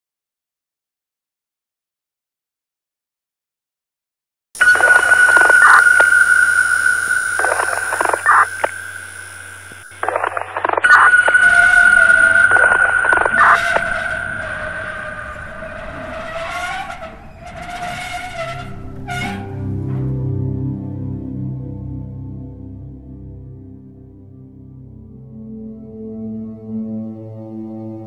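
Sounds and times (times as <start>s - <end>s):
crackling static bursts: 4.6s - 16.3s
steady high-pitched tone: 4.6s - 16.5s
lower wavering tone: 4.6s - 17.6s.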